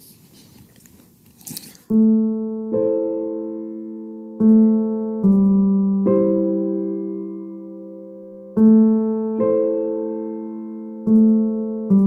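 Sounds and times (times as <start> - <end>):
sustained piano chord: 1.9 - 12.0.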